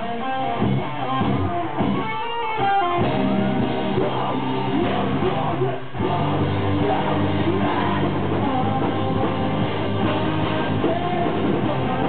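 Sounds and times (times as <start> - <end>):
electric guitar bent lead notes: 0.0 - 12.0
live rock band playing: 0.0 - 12.0.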